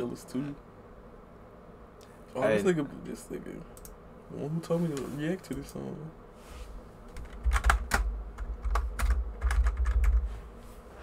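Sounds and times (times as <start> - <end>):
typing on computer keyboard: 7.2 - 10.2.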